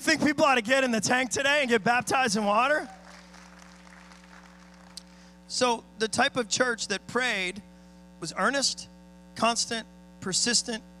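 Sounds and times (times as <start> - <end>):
electrical hum: 0.0 - 11.0
faint applause: 2.8 - 5.2.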